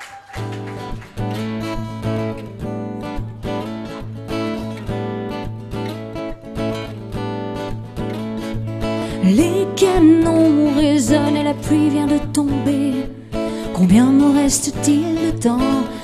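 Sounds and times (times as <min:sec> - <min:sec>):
acoustic guitar strumming chords: 0:00.4 - 0:16.0.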